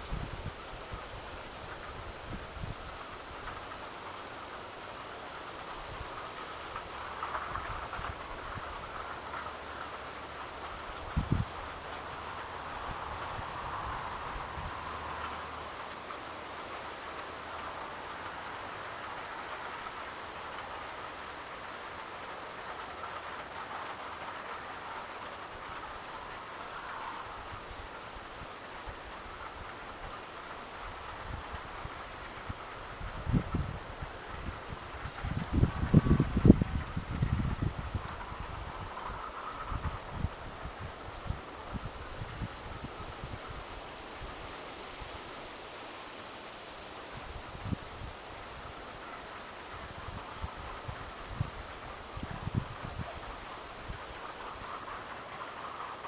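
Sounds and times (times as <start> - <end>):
wind buffeting microphone: 0.0 - 3.7, 5.7 - 15.8, 25.5 - 45.1, 47.1 - 56.0
outdoor hiss: 0.0 - 56.0.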